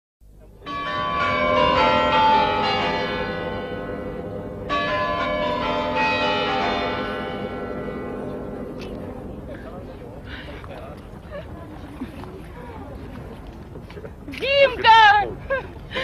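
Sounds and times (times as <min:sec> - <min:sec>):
tower bells chiming: 0:00.6 - 0:10.6.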